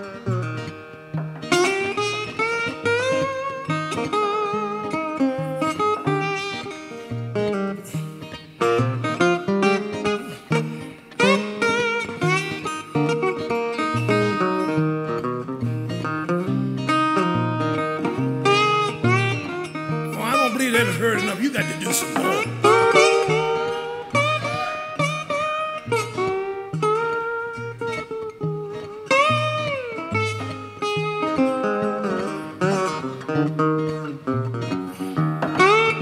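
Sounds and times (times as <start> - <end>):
resonator guitar lead lines: 0.0 - 21.0, 21.7 - 36.0
acoustic guitar bass pattern: 20.0 - 22.9.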